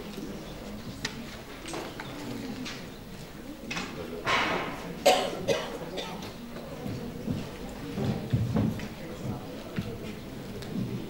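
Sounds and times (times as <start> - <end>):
person coughing: 5.0 - 6.2.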